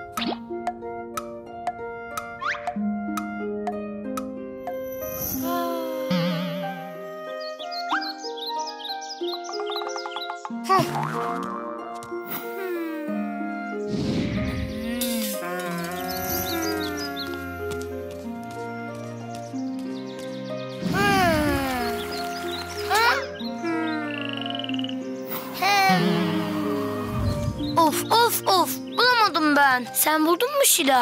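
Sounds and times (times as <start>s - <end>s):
light children's music: 0.0s - 31.0s
cartoon boing: 6.1s - 7.0s, 10.7s - 12.0s
cartoon frog croaking: 10.7s - 12.1s, 22.8s - 25.0s.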